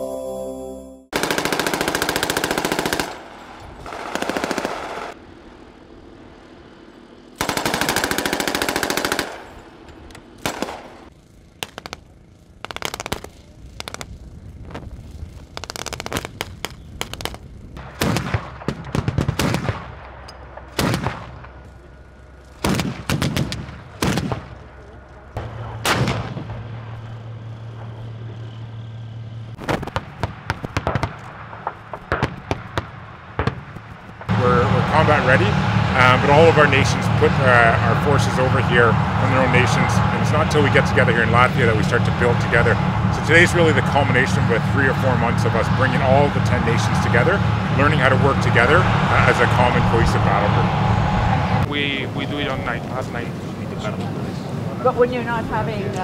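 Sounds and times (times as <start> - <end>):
machine-gun fire: 1.2 - 5.2, 7.4 - 9.6, 10.4 - 14.2, 15.4 - 21.6, 22.6 - 24.6, 25.4 - 26.9, 29.6 - 34.3
steady low hum: 5.1 - 56.0.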